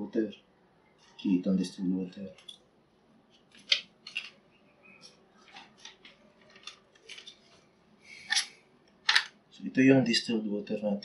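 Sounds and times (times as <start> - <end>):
objects and paper handled on table: 3.3 - 9.4.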